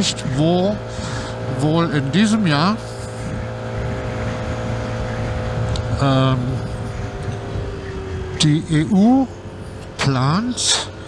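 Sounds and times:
scooter engine running: 0.0 - 11.0
wind noise on microphone: 2.9 - 8.6.

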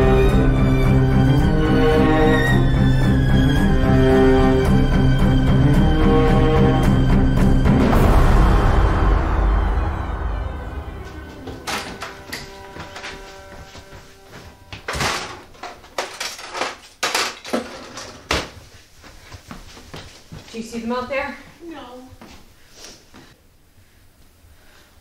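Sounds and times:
music sting: 7.5 - 13.2
knocks and clatters of objects: 11.4 - 13.7, 14.8 - 18.6
person's voice: 20.5 - 22.2.

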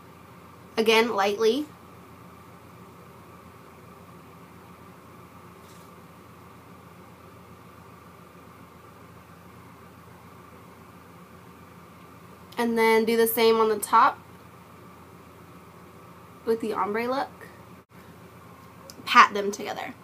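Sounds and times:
faint high rustle: 5.6 - 6.0.

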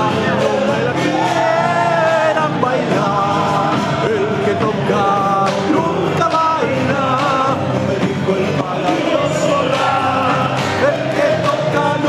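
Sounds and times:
acoustic guitar: 0.0 - 12.0
bass drum: 0.0 - 12.0
men singing into microphones: 0.0 - 12.0.

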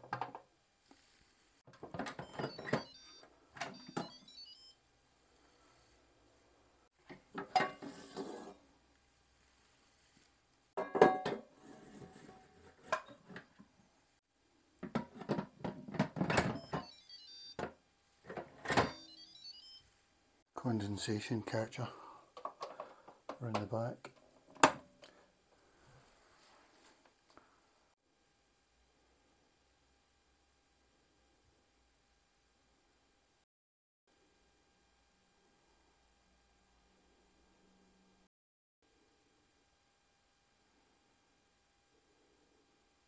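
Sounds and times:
stepped electronic beeps: 3.8 - 4.8, 16.5 - 17.6.

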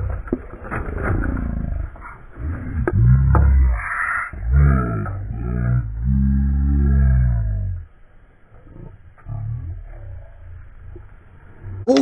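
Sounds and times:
person low wordless vocal sounds: 11.7 - 12.0.

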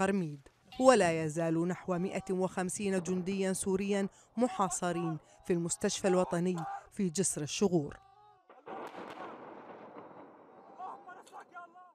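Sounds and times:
distant explosion: 8.5 - 11.2.

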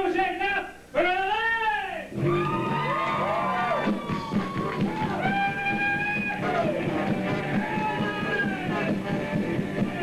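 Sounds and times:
rock band playing: 2.1 - 10.0.

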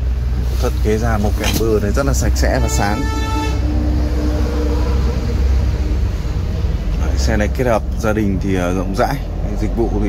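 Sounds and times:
low rumble: 0.0 - 10.0
steady tone: 2.0 - 8.0
vehicle horn toot: 2.4 - 5.2.

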